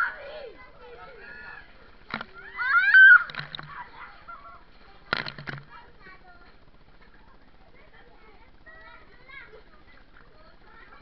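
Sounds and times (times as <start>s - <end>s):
child squealing: 2.4s - 3.3s.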